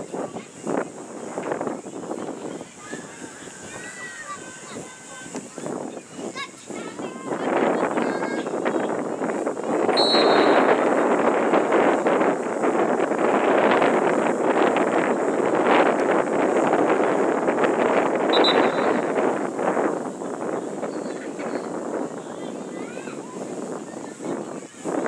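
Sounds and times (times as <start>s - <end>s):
wind buffeting microphone: 0.0s - 25.0s
short high peeps: 10.0s - 10.7s, 18.3s - 19.1s.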